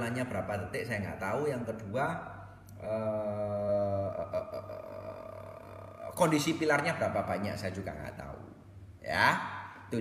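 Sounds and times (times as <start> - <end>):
low steady hum: 0.0 - 10.0
man grunting: 3.4 - 6.2.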